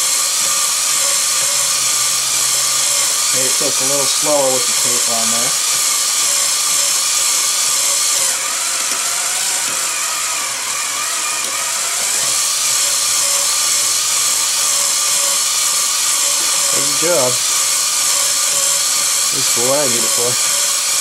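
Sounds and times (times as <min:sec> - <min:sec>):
cordless drill motor whining: 0:00.0 - 0:21.0.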